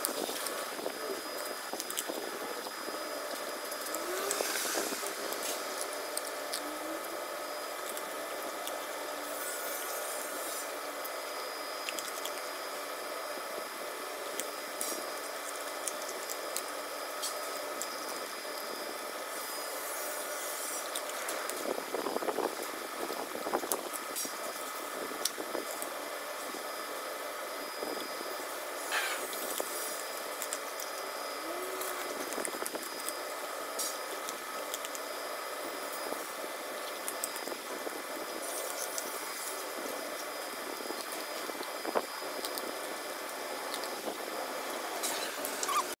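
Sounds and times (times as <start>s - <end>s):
dog cracking bones: 11.8s - 12.6s.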